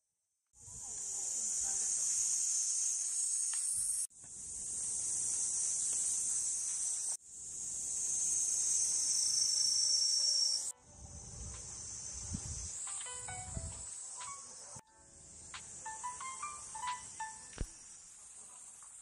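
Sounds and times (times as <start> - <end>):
cicadas buzzing: 0.6 - 19.0
wind rumble on microphone: 11.0 - 12.8, 13.4 - 13.9.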